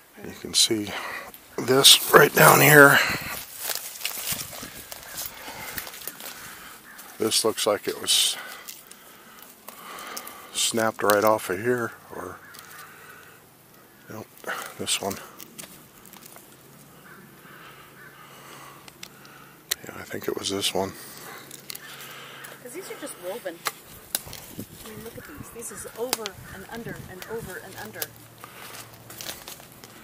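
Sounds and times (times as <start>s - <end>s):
twigs crackling and rustling: 0.1s - 30.0s.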